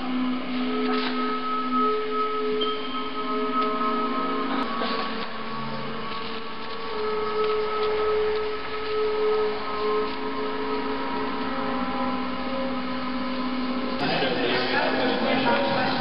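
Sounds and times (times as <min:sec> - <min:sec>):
ambient drone music: 0:00.0 - 0:16.0.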